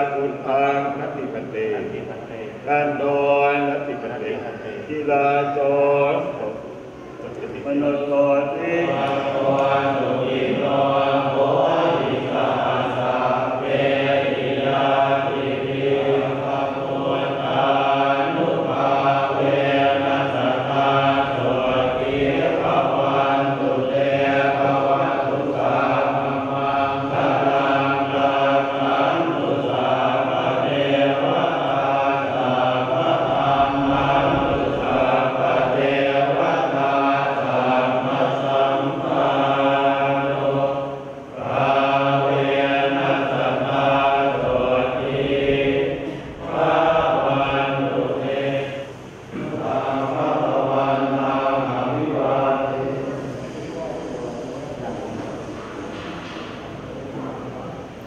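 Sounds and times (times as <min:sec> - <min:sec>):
monks chanting in unison: 0:00.0 - 0:58.0.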